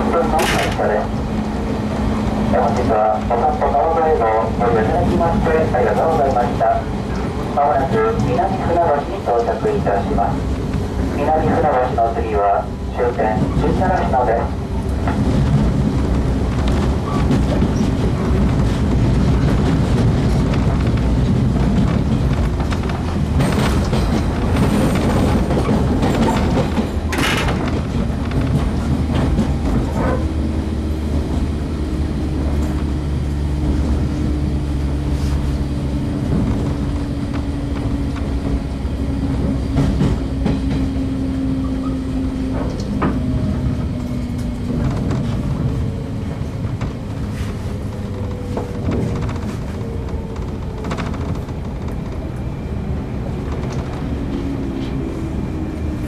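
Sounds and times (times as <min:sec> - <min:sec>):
train low rumble: 0:00.0 - 0:56.0
wheel clacks over rail joints: 0:16.5 - 0:30.4.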